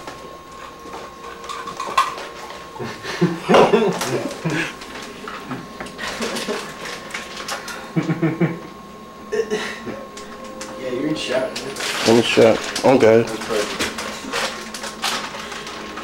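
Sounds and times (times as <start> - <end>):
dishes and cutlery clinking: 0.9 - 2.6.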